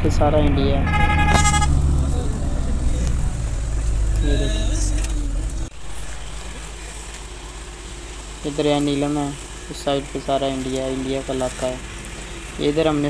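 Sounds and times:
wind rumbling on microphone: 0.0 - 6.5.

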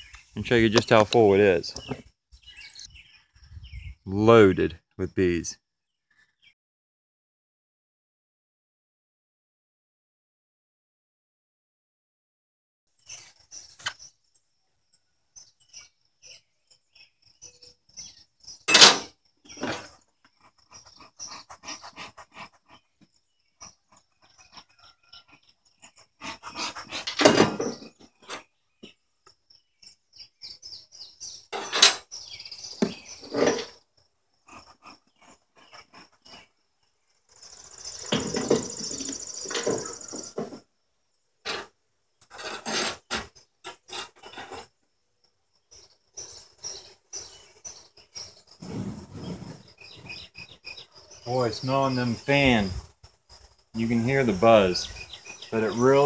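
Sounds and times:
wooden door scraping and creaking: 26.6 - 28.5, 32.8 - 33.8, 38.0 - 40.6, 41.4 - 44.7, 48.5 - 50.3.

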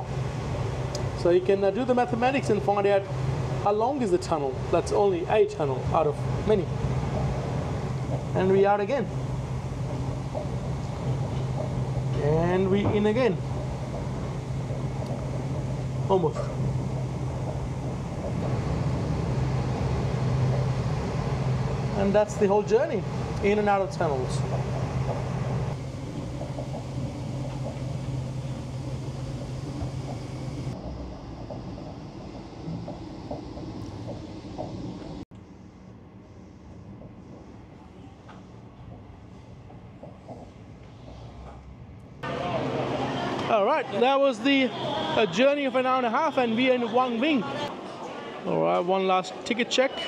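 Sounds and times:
train cabin hum and rumble: 0.0 - 47.8.

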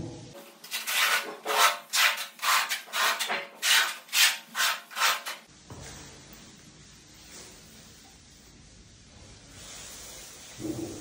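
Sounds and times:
hand scraper scraping adhesive: 0.6 - 5.5.

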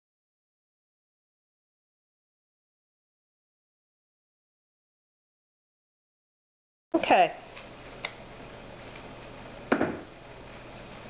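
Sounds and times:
hard object knock: 9.7 - 10.1.

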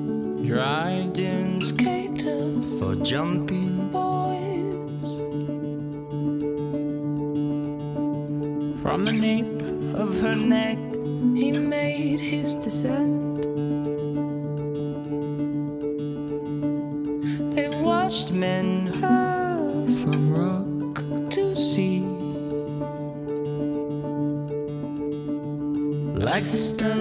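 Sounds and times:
person singing: 0.0 - 5.7, 8.8 - 13.6, 17.2 - 23.4, 26.1 - 27.0
acoustic guitar: 0.0 - 27.0.

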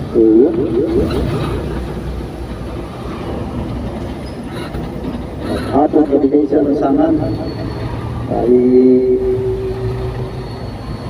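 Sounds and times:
road noise from bicycle: 0.0 - 11.0
street traffic: 0.0 - 11.0.

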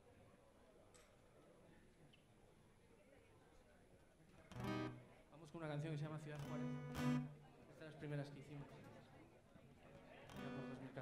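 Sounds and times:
acoustic guitar chord strummed: 6.4 - 7.4, 10.3 - 10.8.

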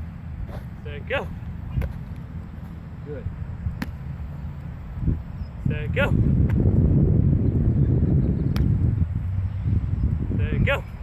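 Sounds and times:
football smacking into hands: 1.7 - 2.2, 3.7 - 4.0, 8.5 - 8.8
wind rumble on microphone: 4.6 - 11.0.

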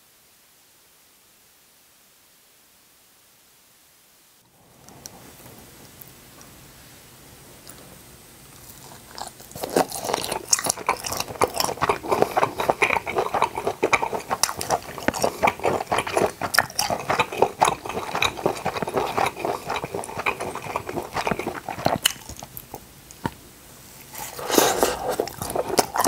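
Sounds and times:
chewing with wet mouth clicks: 8.6 - 23.4, 24.6 - 26.0.

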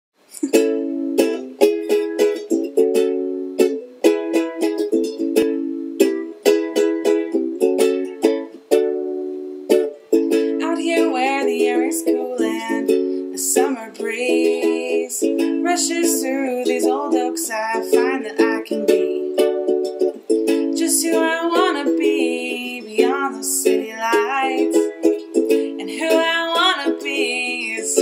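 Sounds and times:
ukulele strumming chords: 0.2 - 28.0.

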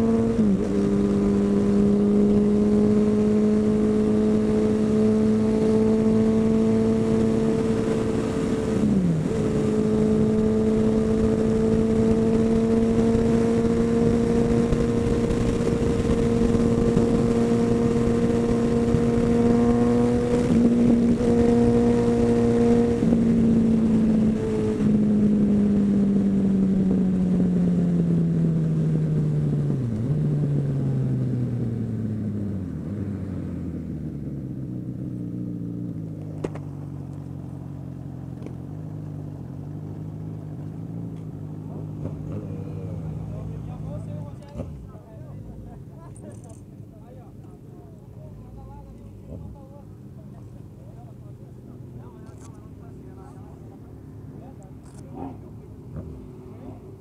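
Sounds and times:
motorcycle engine at speed: 0.0 - 57.0.

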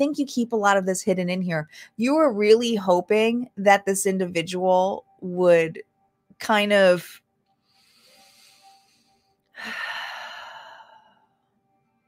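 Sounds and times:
soft background music: 0.0 - 12.0
woman breathing in: 7.6 - 11.4
woman sighing: 9.5 - 11.1.

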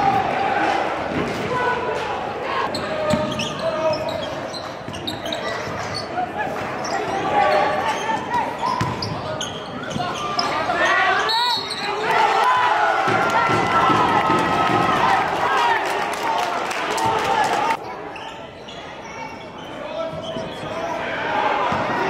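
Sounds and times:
voices echoing in hall: 0.0 - 22.0
sneakers squeaking: 2.6 - 12.1, 18.1 - 21.0.

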